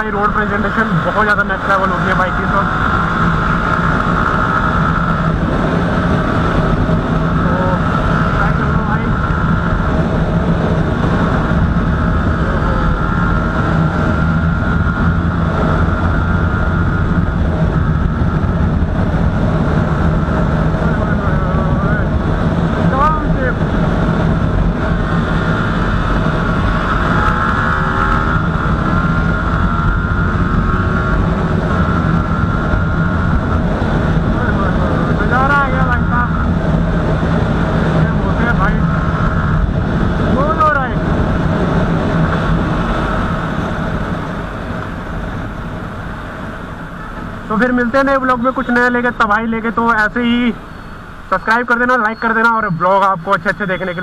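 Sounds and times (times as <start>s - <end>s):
motorcycle engine hum: 0.0s - 54.0s
wind rush on microphone: 0.0s - 54.0s.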